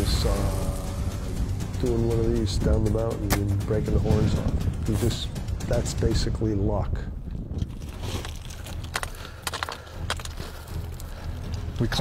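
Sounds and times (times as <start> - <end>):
rocks crunching and clattering: 7.2 - 12.0.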